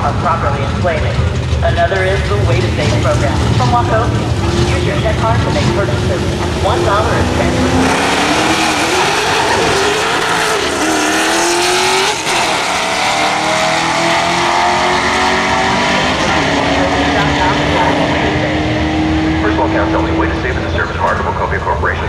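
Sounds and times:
car engines accelerating hard: 0:00.0 - 0:22.0.

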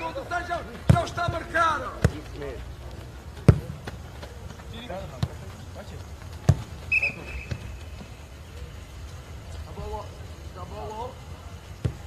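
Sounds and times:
football kicked hard: 0:06.4 - 0:06.7.

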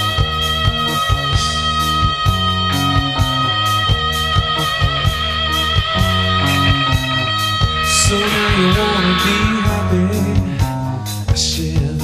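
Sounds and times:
drums and bass: 0:00.0 - 0:12.0
electric lead guitar: 0:00.0 - 0:12.0
cymbal crash: 0:07.8 - 0:11.0.

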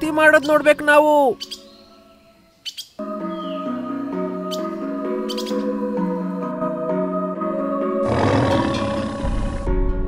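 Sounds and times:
background music with held notes: 0:00.0 - 0:10.0
tiger roar: 0:08.0 - 0:09.8.

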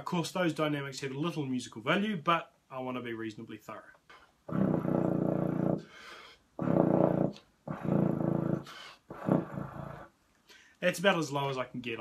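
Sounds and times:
player breathing: 0:05.8 - 0:06.5.

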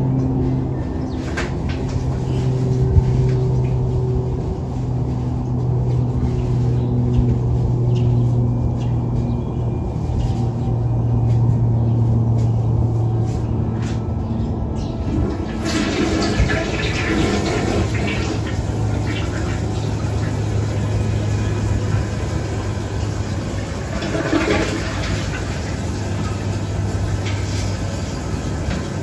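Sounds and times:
low machine hum: 0:00.0 - 0:29.0.

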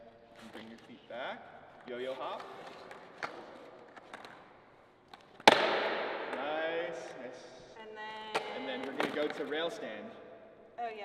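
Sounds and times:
skateboard slapping on concrete: 0:05.2 - 0:06.5, 0:08.3 - 0:09.5.

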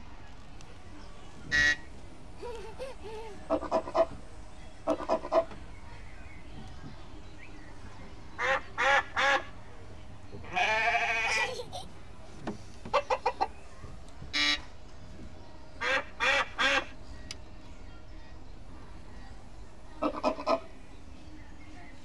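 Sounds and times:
farm animal calls: 0:01.5 - 0:02.0, 0:03.3 - 0:04.2, 0:04.8 - 0:05.6, 0:08.3 - 0:09.6, 0:10.4 - 0:11.7, 0:12.9 - 0:13.6, 0:14.3 - 0:14.7, 0:15.8 - 0:17.0, 0:20.0 - 0:20.8.

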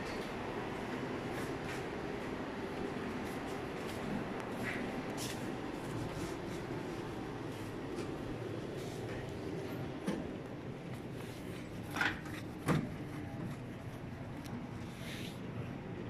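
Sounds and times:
air conditioning rumble: 0:00.0 - 0:16.0.

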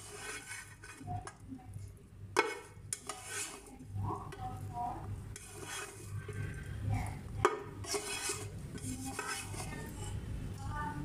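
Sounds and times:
spatula scraping a pan: 0:00.0 - 0:04.6, 0:05.2 - 0:10.2.

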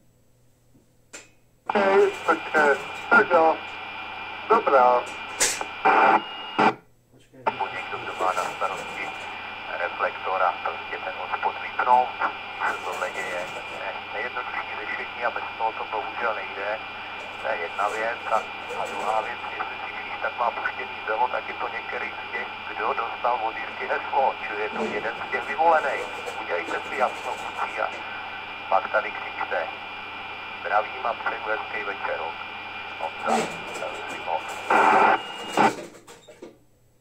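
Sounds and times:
hissy radio speech: 0:01.7 - 0:35.8.

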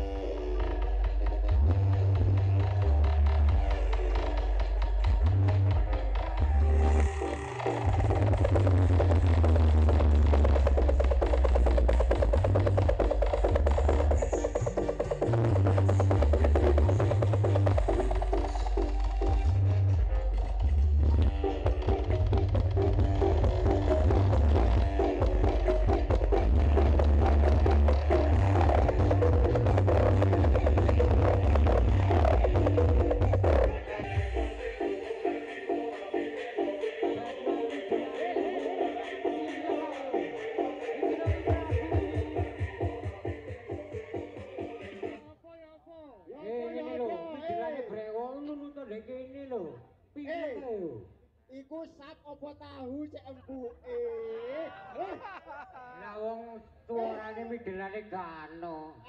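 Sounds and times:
loud music with heavy bass: 0:00.0 - 0:45.2.

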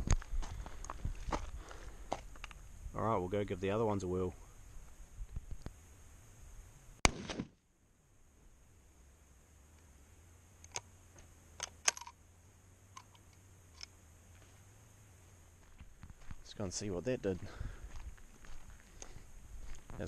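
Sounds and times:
rifle clicks: 0:11.6 - 0:12.2.

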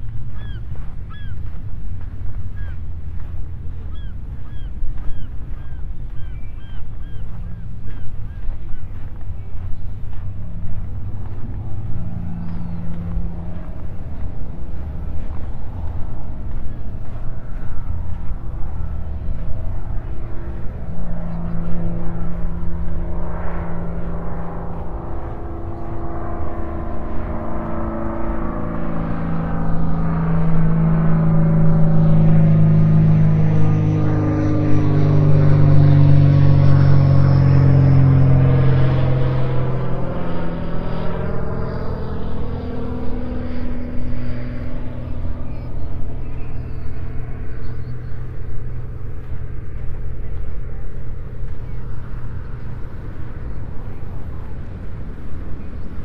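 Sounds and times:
low-flying aircraft engine drone: 0:00.0 - 0:56.0.

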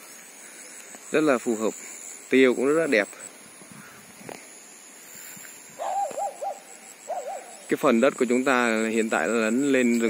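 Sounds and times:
high-pitched insect drone: 0:00.0 - 0:10.0
animal wavering whine: 0:05.8 - 0:07.7.

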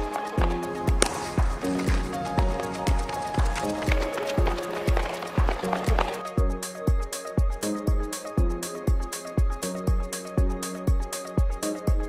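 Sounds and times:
upbeat electronic music: 0:00.0 - 0:12.0.

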